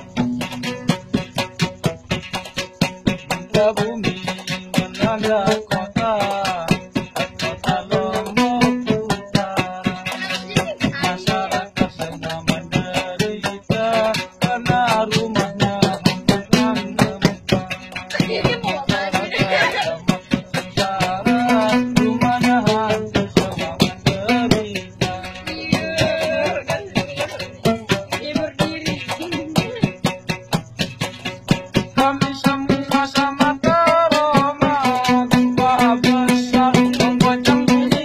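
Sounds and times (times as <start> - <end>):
man singing folk melody: 0.1 - 30.2, 31.0 - 38.0.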